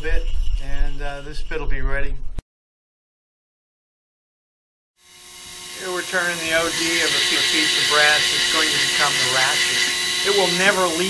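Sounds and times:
mini lathe whining: 5.0 - 11.0.

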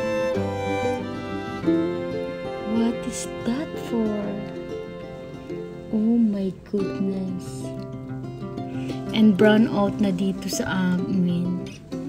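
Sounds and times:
guitar-like background music: 0.0 - 12.0.

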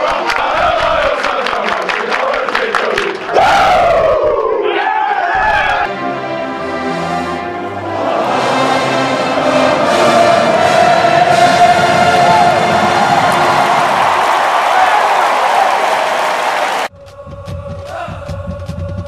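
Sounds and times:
stadium crowd cheering: 0.0 - 16.9
brass-led music: 5.8 - 17.6.

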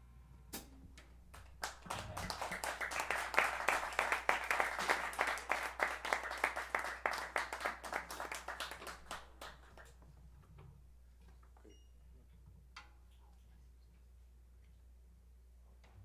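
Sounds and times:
audience applause: 1.6 - 9.9.

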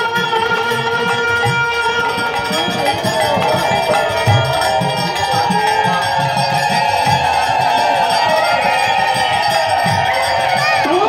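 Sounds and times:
hand cymbals ringing: 0.0 - 11.0
hand drums beating: 0.0 - 11.0
harmonium chord drone: 0.0 - 11.0.

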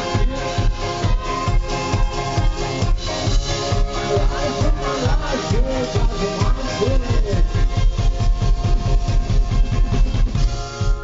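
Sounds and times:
electric guitar: 0.0 - 11.0
flute: 0.0 - 11.0
live band music: 0.0 - 11.0
pulsing bass: 0.0 - 11.0.

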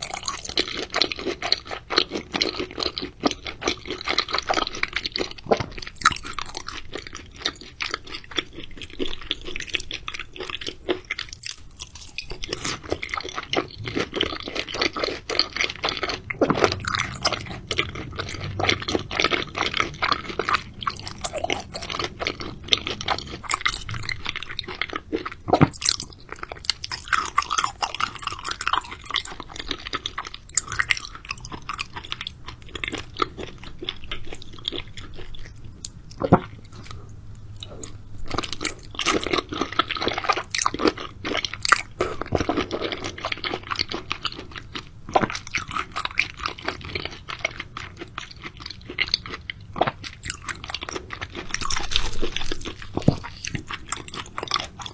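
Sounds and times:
wet chewing and mouth smacks: 0.0 - 54.9.

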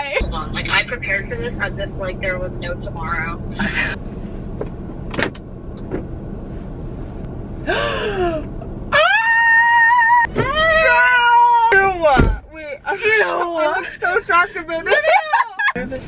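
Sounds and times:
steady low hum: 0.0 - 10.8.

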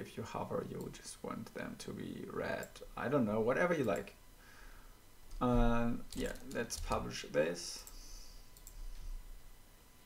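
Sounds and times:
faint low hum: 0.0 - 10.0
computer mouse clicking: 8.6 - 9.0.

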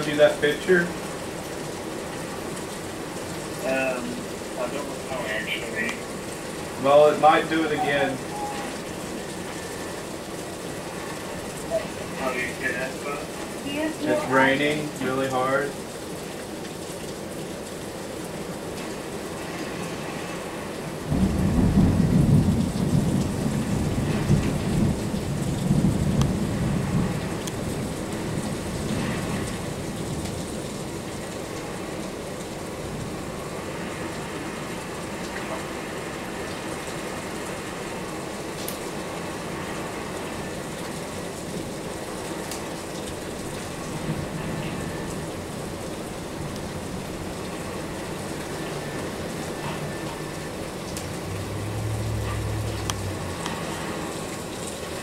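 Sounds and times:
heavy rain pouring: 0.0 - 55.0
thunder rumbling: 21.0 - 31.8, 43.0 - 55.0.

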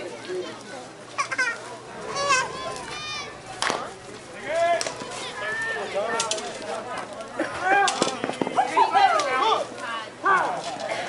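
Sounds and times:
people shouting: 1.8 - 6.4.

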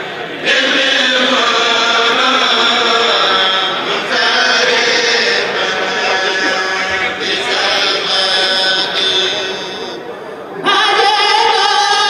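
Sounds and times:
men chanting in unison: 0.3 - 10.0.

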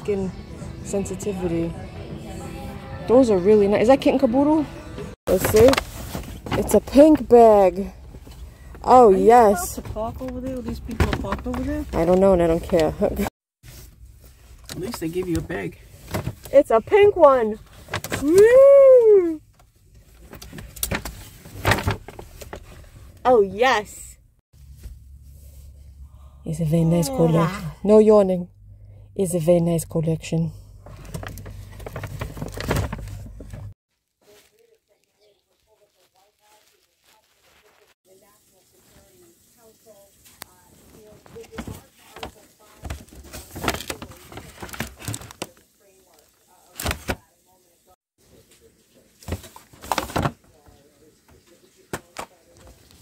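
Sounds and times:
paper bag rustling and crinkling: 5.3 - 18.5, 20.0 - 23.1, 30.8 - 47.4, 49.1 - 50.8.

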